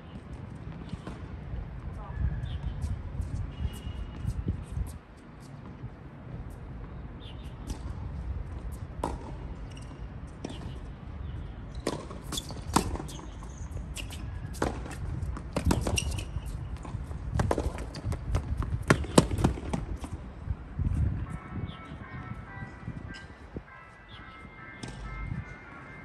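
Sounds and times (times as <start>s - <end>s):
tennis ball bouncing: 9.0s - 10.8s, 11.7s - 20.2s
racket striking tennis ball: 11.8s - 20.2s.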